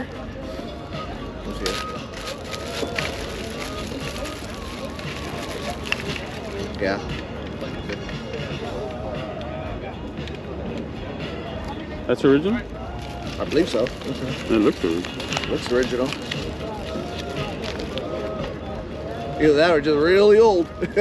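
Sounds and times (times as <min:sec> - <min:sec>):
crowd chatter: 0:00.0 - 0:21.0
faint music: 0:00.0 - 0:21.0.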